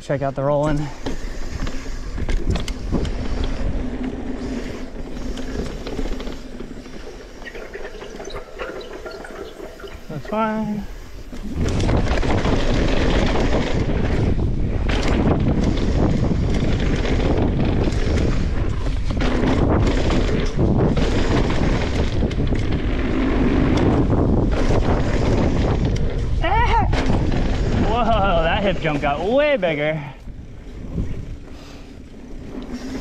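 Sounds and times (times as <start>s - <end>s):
bike knocking and rattling: 0.0s - 33.0s
mountain bike rolling on dirt: 0.0s - 33.0s
wind buffeting microphone: 0.8s - 33.0s.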